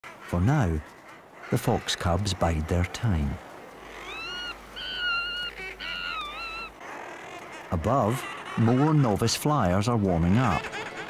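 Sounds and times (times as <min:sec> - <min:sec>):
seabird chicks peeping: 0:03.7 - 0:11.0.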